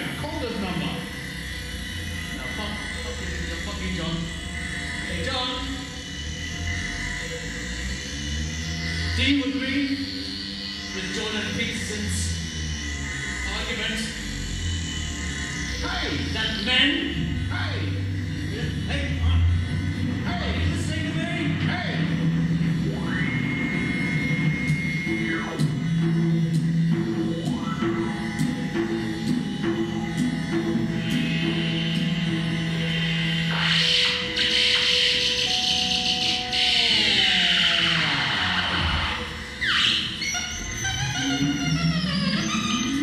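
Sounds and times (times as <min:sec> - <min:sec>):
high synth tone: 0:00.0 - 0:43.0
low droning synth note: 0:00.0 - 0:43.0.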